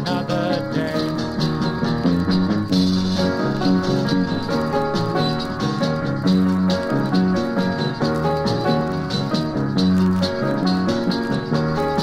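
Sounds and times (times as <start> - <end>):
acoustic guitar: 0.0 - 12.0
rattling shaker rhythm: 0.0 - 12.0
sustained pitched notes: 0.0 - 12.0.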